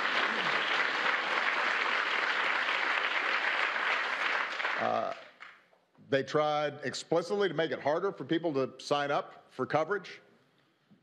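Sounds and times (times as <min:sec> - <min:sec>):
audience applause: 0:00.0 - 0:05.5.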